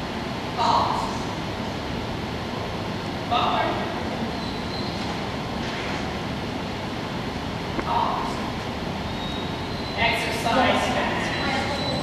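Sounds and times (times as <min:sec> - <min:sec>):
indoor hall room noise: 0:00.0 - 0:12.0.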